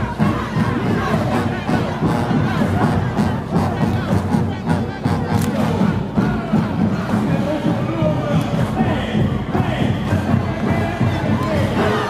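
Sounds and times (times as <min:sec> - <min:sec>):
crowd shouting and cheering: 0:00.0 - 0:12.0
marching band brass and drums: 0:00.0 - 0:12.0.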